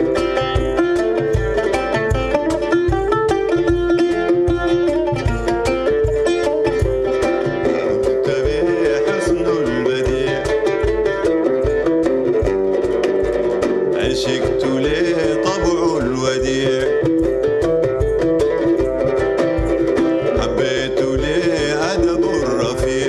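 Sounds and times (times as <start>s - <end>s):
plucked string melody: 0.0s - 23.0s.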